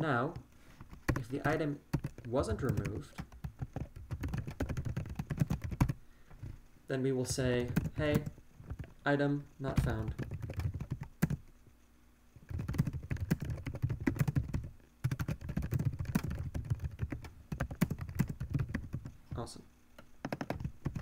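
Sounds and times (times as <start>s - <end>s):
fast typing on keyboard: 0.9s - 6.5s, 7.3s - 9.0s, 9.6s - 11.5s, 12.4s - 19.2s, 20.2s - 21.0s.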